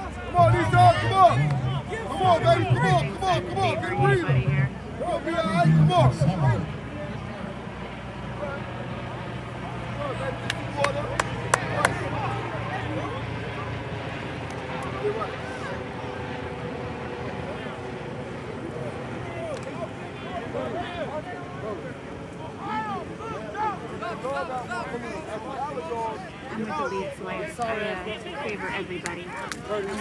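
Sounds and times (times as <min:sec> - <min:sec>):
steady low hum: 0:00.0 - 0:19.2.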